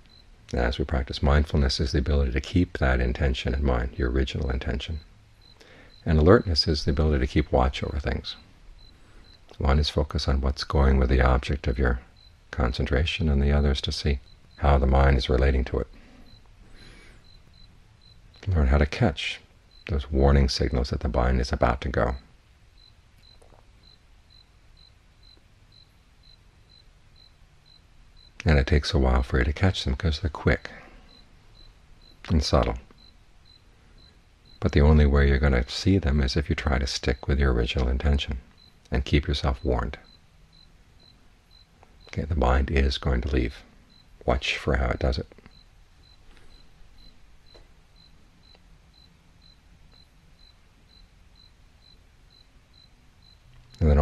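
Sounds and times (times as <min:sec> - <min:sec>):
steady low hum: 0:00.0 - 0:54.0
soft clicks: 0:48.5 - 0:48.7, 0:53.5 - 0:53.8.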